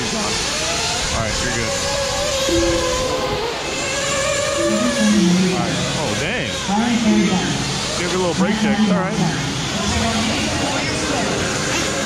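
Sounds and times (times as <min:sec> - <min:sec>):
motor whine: 0:00.0 - 0:12.0
rc cars noisy rush: 0:00.0 - 0:12.0.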